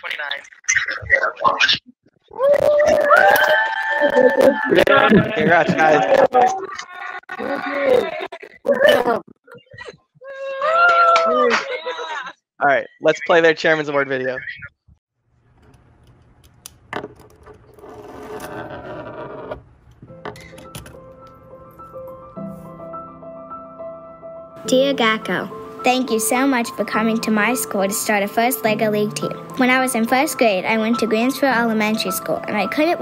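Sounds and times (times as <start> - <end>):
people screaming and cheering: 2.3 - 9.0, 10.2 - 12.3
people laughing: 4.1 - 9.9, 10.9 - 12.3.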